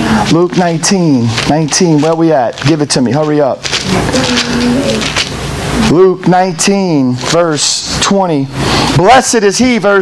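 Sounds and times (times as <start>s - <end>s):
book pages rustling: 1.3s - 5.4s
person humming: 3.8s - 5.2s.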